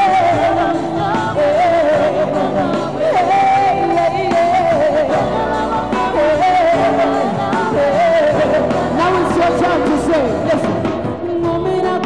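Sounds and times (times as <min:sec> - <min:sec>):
live pop band playing: 0:00.0 - 0:12.0
woman singing: 0:00.0 - 0:12.0.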